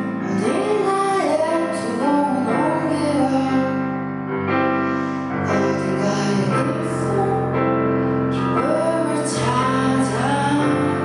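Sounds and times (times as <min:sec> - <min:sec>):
digital piano chords: 0:00.0 - 0:11.0
woman singing: 0:00.1 - 0:03.9, 0:05.5 - 0:11.0.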